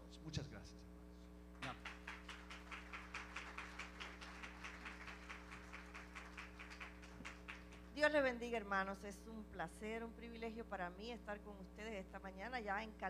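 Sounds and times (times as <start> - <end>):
electrical hum: 0.0 - 13.0
people clapping: 1.6 - 8.1.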